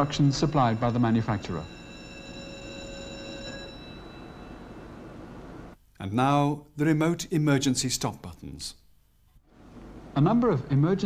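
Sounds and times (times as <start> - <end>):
electric alarm bell ringing: 0.0 - 5.7.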